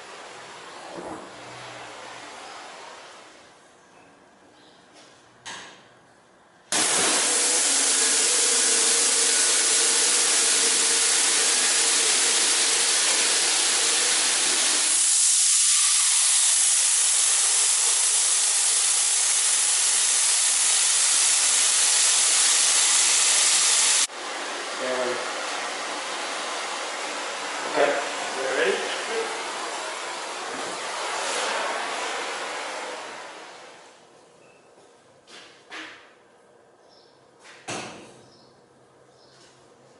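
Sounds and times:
loud hiss of spray: 0:06.7 - 0:24.1.

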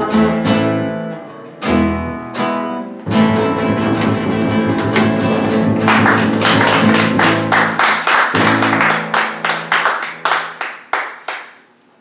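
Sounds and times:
acoustic guitar strums: 0:00.0 - 0:10.6
low double bass notes: 0:03.1 - 0:07.6.

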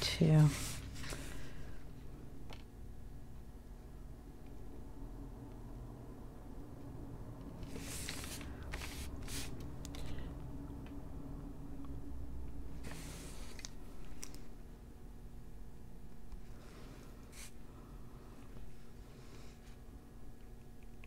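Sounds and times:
low steady hum: 0:00.0 - 0:21.0
paper rustling and sliding: 0:00.4 - 0:01.6, 0:07.6 - 0:09.6, 0:12.8 - 0:14.3.

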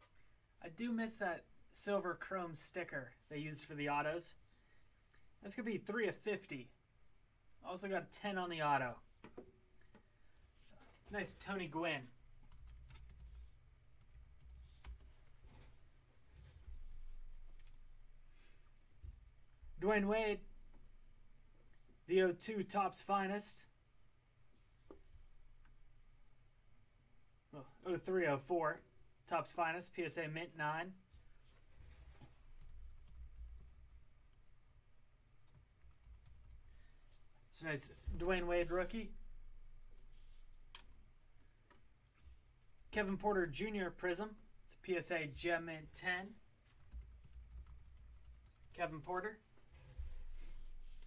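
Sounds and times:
computer keyboard typing: 0:12.4 - 0:15.0, 0:32.5 - 0:34.0, 0:35.4 - 0:36.8, 0:46.7 - 0:48.7.

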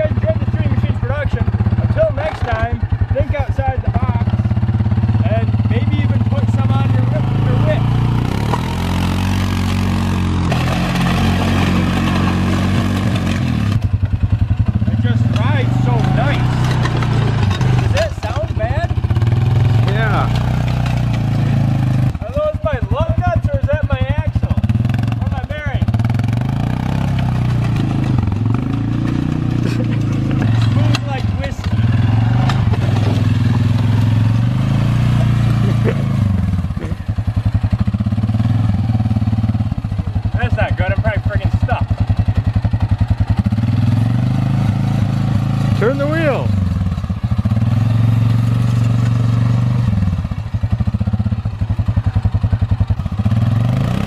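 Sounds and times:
atv engine revving: 0:00.0 - 0:54.0
clattering knocks from wheels: 0:08.2 - 0:22.2, 0:24.6 - 0:49.8.

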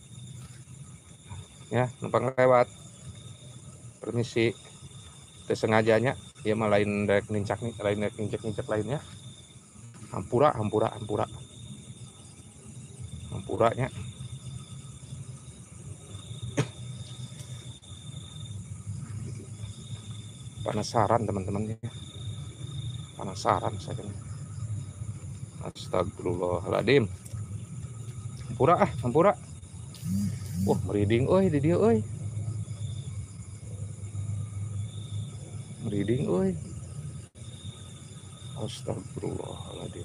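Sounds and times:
high insect trill: 0:00.0 - 0:40.0
steady low rumble: 0:00.0 - 0:40.0.

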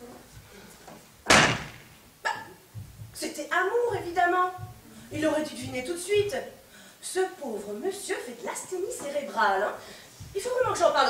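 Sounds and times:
door slamming shut: 0:01.3 - 0:02.0.

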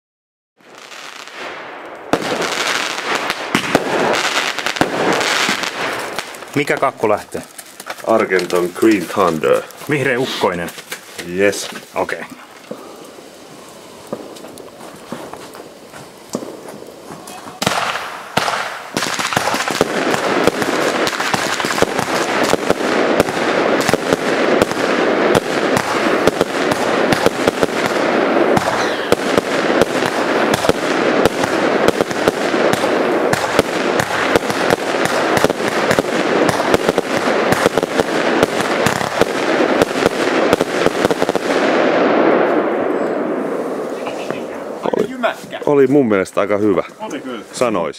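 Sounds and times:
firework shots firing: 0:00.6 - 0:45.0
firework fuse: 0:00.6 - 0:47.9
dense crackle: 0:01.8 - 0:41.6.

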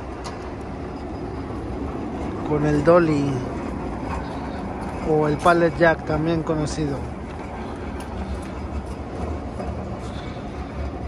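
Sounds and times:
pallet jack rolling on concrete: 0:00.0 - 0:11.0.

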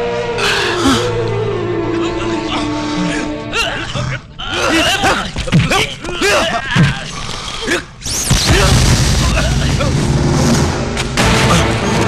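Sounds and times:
film score rumble: 0:08.1 - 0:12.0
loud boom: 0:08.3 - 0:12.0.

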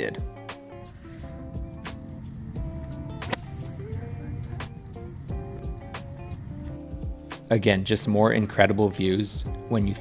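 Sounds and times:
background music with steady beat: 0:00.0 - 0:10.0
golf club striking ball: 0:01.3 - 0:07.5.

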